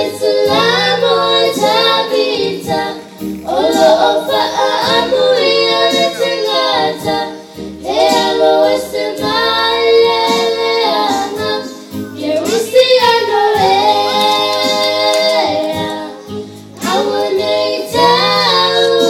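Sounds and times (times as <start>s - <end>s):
girls singing through sound system: 0.0s - 19.0s.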